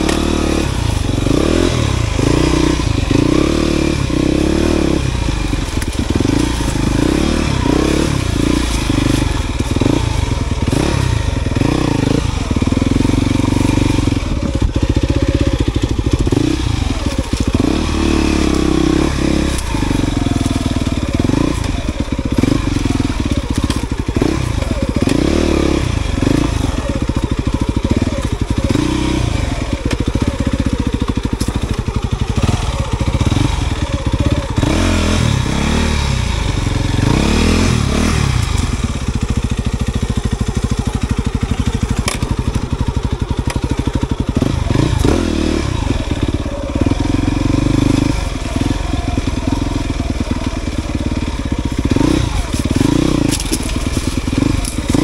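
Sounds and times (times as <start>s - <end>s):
dirt bike engine revving: 0.0s - 55.0s.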